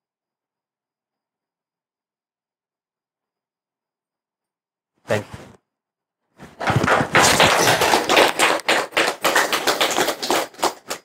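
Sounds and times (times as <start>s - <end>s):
audience clapping: 6.4s - 11.0s.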